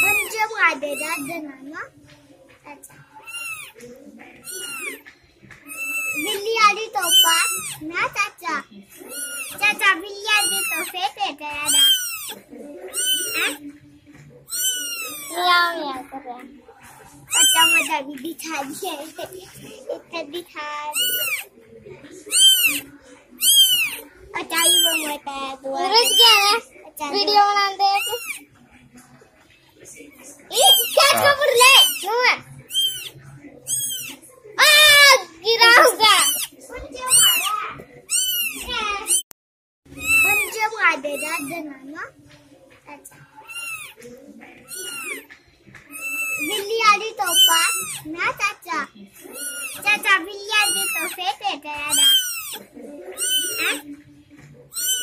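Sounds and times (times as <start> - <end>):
kitten meowing: 0.0 - 0.3, 3.2 - 3.8, 4.4 - 5.0, 5.7 - 6.4, 7.0 - 7.8, 9.0 - 9.7, 10.3 - 10.9, 11.6 - 13.6, 14.5 - 15.5, 17.3 - 17.9, 20.9 - 21.5, 22.3 - 24.0, 24.6 - 25.1, 26.0 - 26.4, 28.0 - 28.4, 30.6 - 32.1, 32.7 - 34.2, 36.2 - 36.5, 37.1 - 37.5, 38.1 - 39.2, 40.0 - 40.5, 43.5 - 44.0, 44.7 - 45.3, 45.9 - 46.6, 47.3 - 48.1, 49.2 - 49.9, 50.6 - 51.2, 51.9 - 53.8, 54.7 - 55.0.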